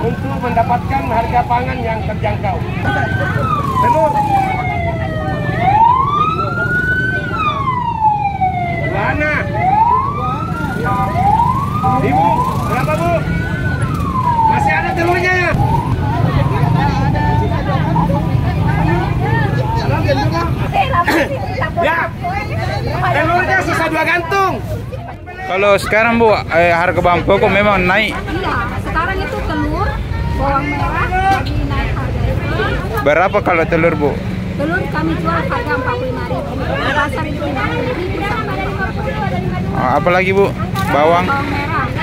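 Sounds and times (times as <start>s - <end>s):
people's voices: 0.0s - 42.0s
siren wailing: 2.8s - 20.6s.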